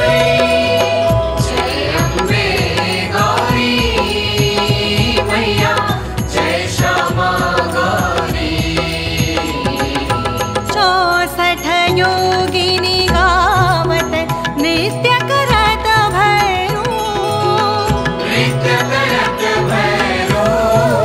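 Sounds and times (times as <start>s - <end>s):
instrumental accompaniment: 0.0s - 21.0s
percussion strokes: 0.0s - 21.0s.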